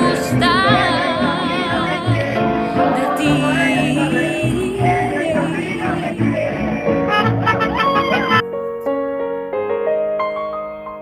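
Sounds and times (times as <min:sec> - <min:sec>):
repeating bass: 0:00.0 - 0:08.4
song with vibrato melody: 0:00.0 - 0:08.6.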